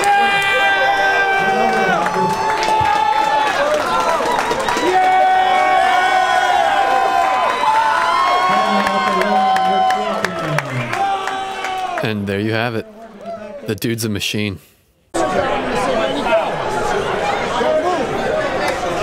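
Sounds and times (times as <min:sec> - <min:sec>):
crowd cheering and yelling: 0:00.0 - 0:12.2.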